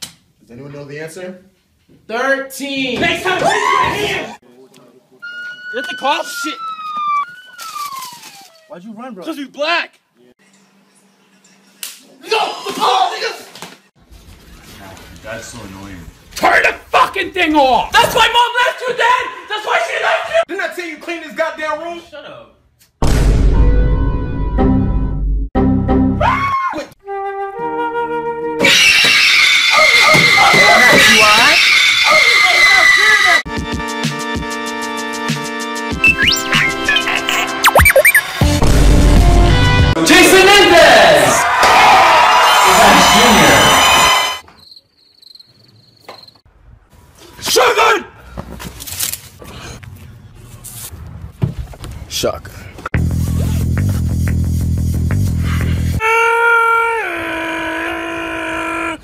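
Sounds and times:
flute-like held notes: 0:05.2 - 0:07.5
loud music: 0:33.5 - 0:40.0
crickets chirping: 0:44.4 - 0:46.5
man screaming: 0:56.0 - 0:59.0.

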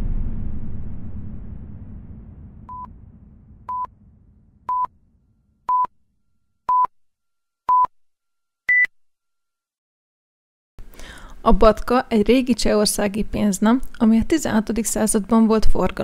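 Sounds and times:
low rumbling: 0:00.0 - 0:06.4
electronic timer beeps: 0:06.7 - 0:06.9, 0:07.7 - 0:07.9, 0:08.7 - 0:08.9.

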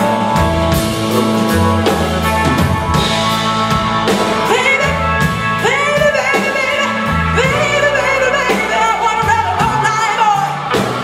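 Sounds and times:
drum kit hits: 0:00.0 - 0:05.6
bass guitar: 0:00.0 - 0:11.0
electric guitar: 0:00.0 - 0:11.0
woman singing: 0:04.4 - 0:10.6.

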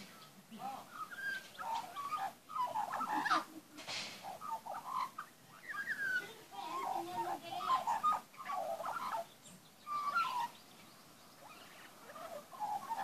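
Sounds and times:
magpie warbling song: 0:04.2 - 0:13.0.

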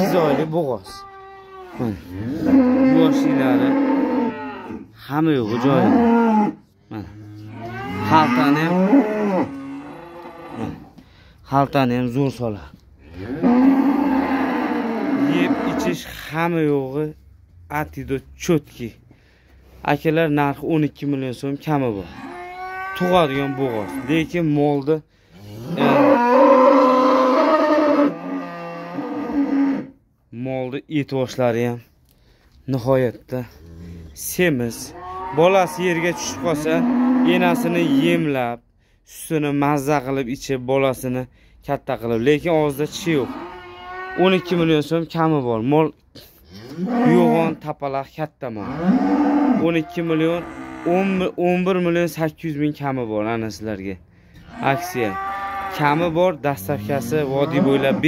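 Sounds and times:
cattle mooing: 0:00.0 - 0:10.9, 0:13.2 - 0:16.0, 0:22.0 - 0:24.3, 0:25.6 - 0:29.9, 0:34.8 - 0:38.2, 0:43.0 - 0:44.6, 0:46.6 - 0:47.6, 0:48.6 - 0:51.3, 0:54.4 - 0:58.0.

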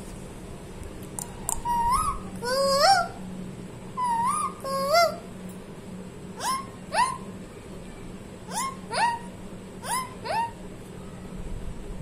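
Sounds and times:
parakeet calls: 0:01.6 - 0:03.3, 0:04.0 - 0:05.3, 0:06.4 - 0:07.3, 0:08.5 - 0:10.6.

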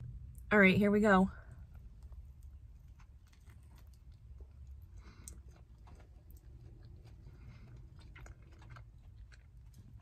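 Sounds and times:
low steady hum: 0:00.0 - 0:10.0
person chewing: 0:01.6 - 0:10.0.

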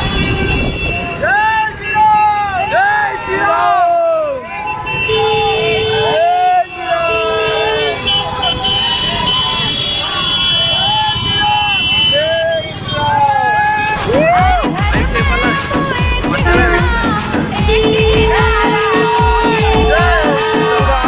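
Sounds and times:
riders shouting and cheering: 0:00.2 - 0:21.0
horn sounding: 0:16.4 - 0:21.0.

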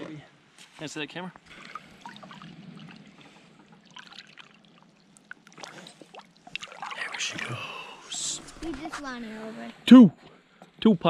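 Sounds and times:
small splashes: 0:01.4 - 0:07.9
river water trickling: 0:01.4 - 0:09.2.

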